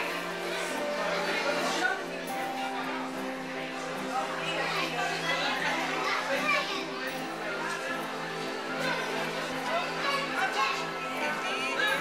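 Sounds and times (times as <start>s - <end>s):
background music: 0.0s - 12.0s
children chattering: 0.0s - 12.0s.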